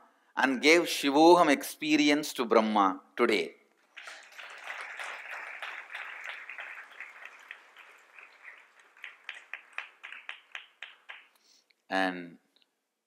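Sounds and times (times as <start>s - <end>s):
audience applauding: 3.8s - 11.4s
separate hand claps: 3.9s - 11.4s.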